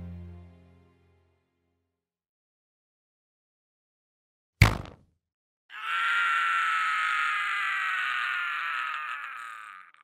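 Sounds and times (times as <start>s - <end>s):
man crying out in pain: 5.7s - 10.0s.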